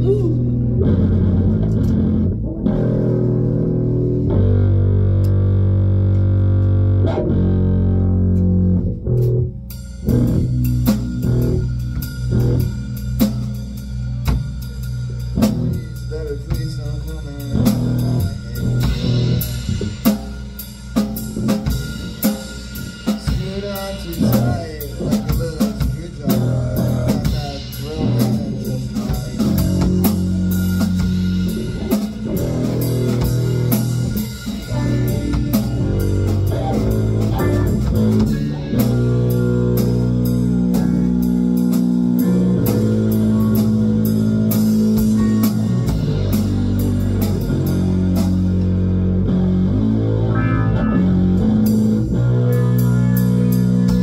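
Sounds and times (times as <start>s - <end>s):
drum kit playing: 0.0s - 54.0s
electric guitars through amplifiers: 0.0s - 54.0s.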